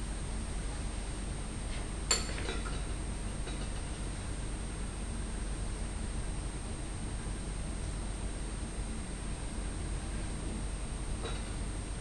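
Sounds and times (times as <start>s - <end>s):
background hiss and hum: 0.0s - 12.0s.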